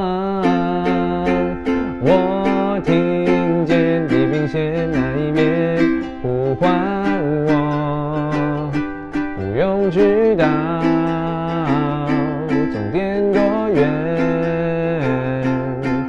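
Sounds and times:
man singing: 0.0 - 16.0
strummed ukulele: 0.0 - 16.0.

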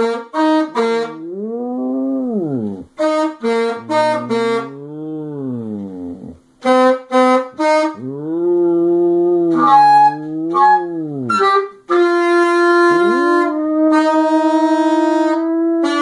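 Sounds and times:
dog howling: 1.2 - 2.9, 3.8 - 6.4, 8.0 - 11.6, 13.0 - 16.0
saxophone playing short notes: 3.0 - 5.9, 9.4 - 16.0.

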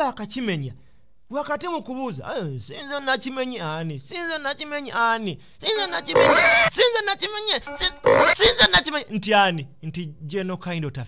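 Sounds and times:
voices: 5.7 - 9.0
harsh noisy bursts: 6.1 - 6.7, 7.7 - 8.4.

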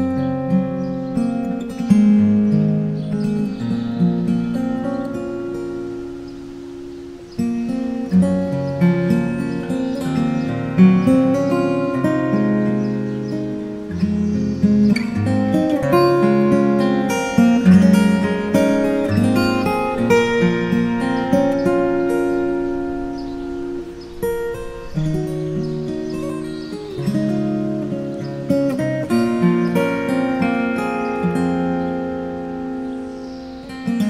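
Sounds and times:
fingerstyle acoustic guitar waltz: 0.0 - 34.0.

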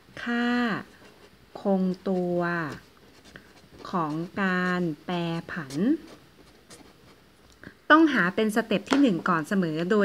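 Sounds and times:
pen scratching on paper: 0.4 - 7.2.

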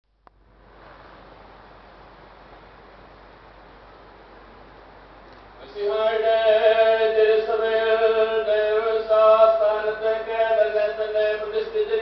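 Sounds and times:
low constant hum: 0.0 - 12.0
background hiss: 0.1 - 12.0.

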